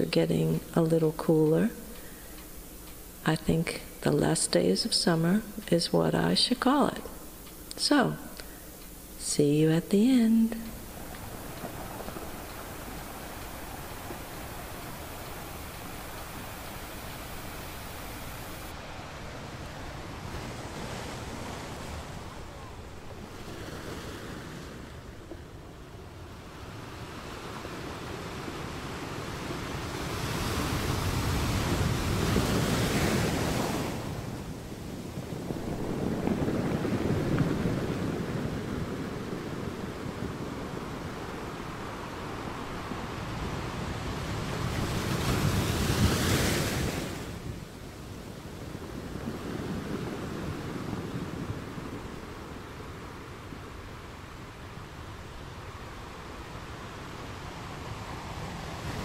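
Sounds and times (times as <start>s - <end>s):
ocean waves washing in: 0.0s - 59.0s.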